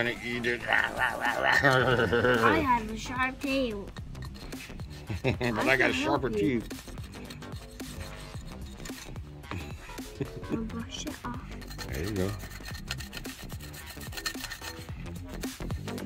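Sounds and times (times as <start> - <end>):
background music: 0.0 - 16.0
chisel scraping sand block: 4.0 - 9.2, 11.6 - 16.0.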